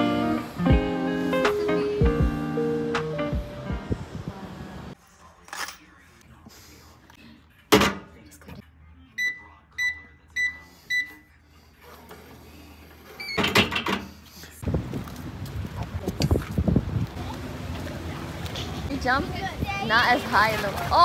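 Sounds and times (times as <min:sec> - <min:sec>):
safe keypad beeping: 0:09.2 - 0:11.1.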